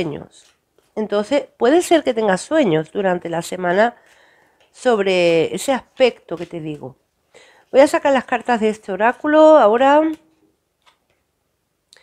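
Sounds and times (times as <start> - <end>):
woman's voice: 0.0 - 4.0, 4.8 - 7.0, 7.7 - 10.3.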